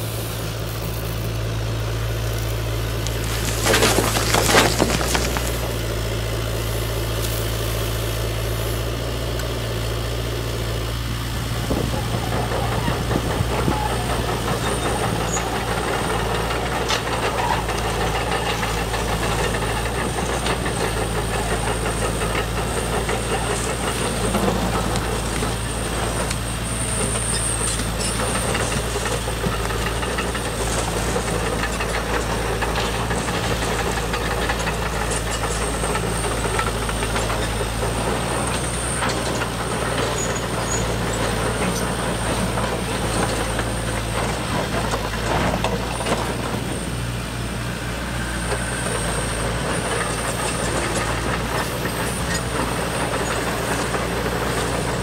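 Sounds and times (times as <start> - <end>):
excavator motor drone: 0.0 - 55.0
stones clicking: 3.0 - 5.9.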